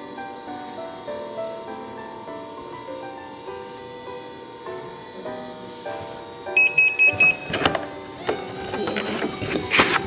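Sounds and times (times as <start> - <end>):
soft background music: 0.0 - 10.0
laminator beeps: 6.5 - 8.9.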